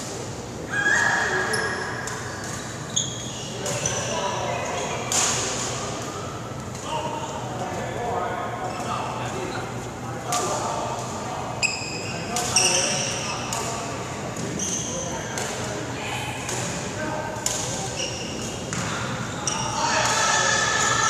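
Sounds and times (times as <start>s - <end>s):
voices chattering: 0.5s - 21.0s
shoes squeaking on wooden court: 0.8s - 5.4s, 11.5s - 13.6s, 14.3s - 15.6s, 17.6s - 19.8s.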